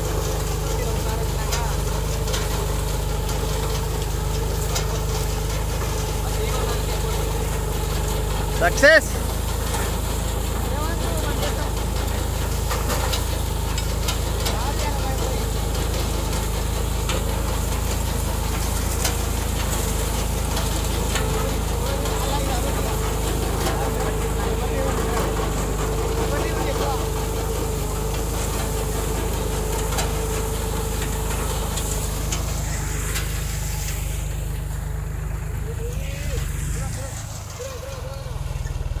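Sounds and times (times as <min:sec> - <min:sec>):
tractor diesel engine under load: 0:00.0 - 0:39.0.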